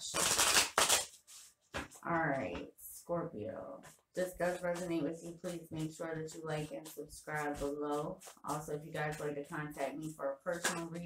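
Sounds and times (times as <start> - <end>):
cards snapping: 0.2 - 1.1
cards riffling: 0.2 - 1.2.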